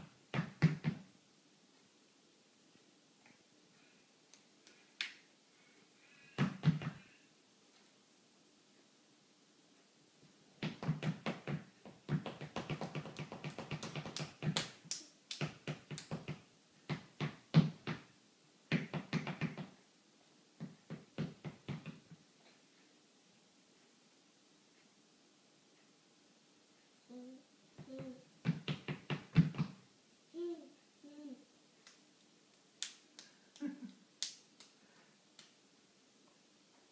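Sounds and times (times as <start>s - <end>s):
baby clapping hands: 10.6s - 18.0s
baby vocalising: 30.4s - 31.5s.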